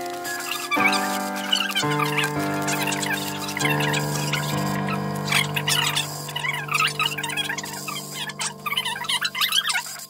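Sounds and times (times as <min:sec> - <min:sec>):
music of sustained chords: 0:00.0 - 0:10.0.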